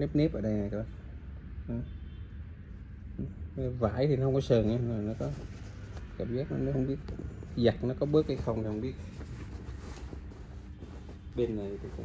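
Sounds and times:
steady low hum: 0.0 - 12.0
fabric rustling: 4.4 - 12.0.

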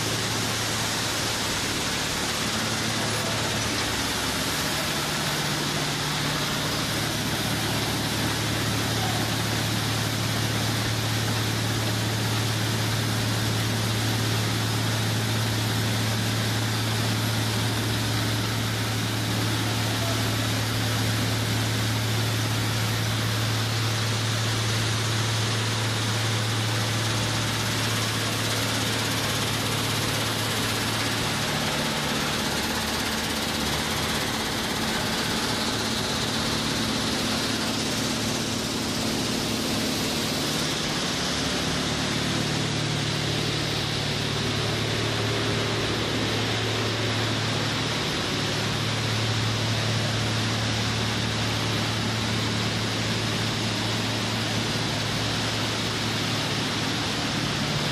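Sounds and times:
broad rushing noise: 0.0 - 57.9
machinery low hum: 0.0 - 57.9.

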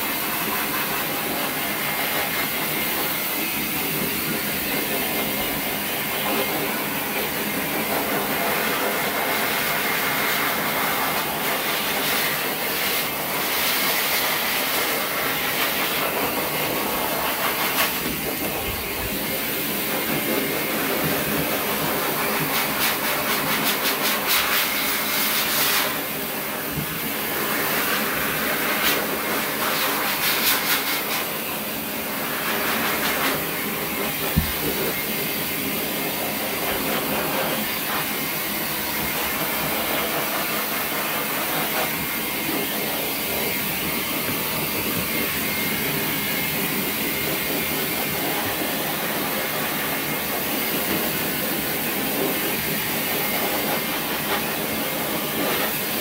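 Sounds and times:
dog grooming dryer blowing air: 0.0 - 56.0.

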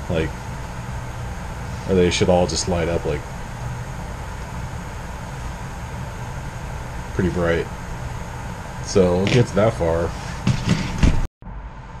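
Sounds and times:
room hum: 0.0 - 12.0
objects knocking on wooden workbench: 10.4 - 11.3.

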